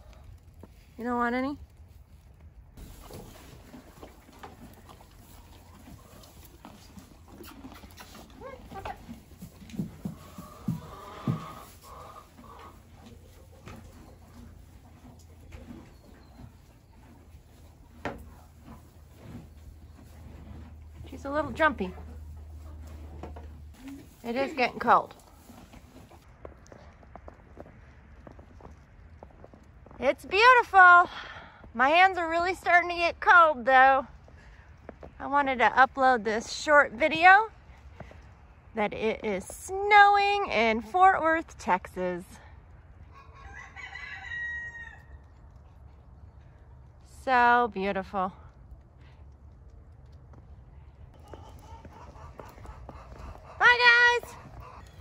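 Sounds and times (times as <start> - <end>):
horses snuffling: 0.0 - 31.8, 48.5 - 55.0.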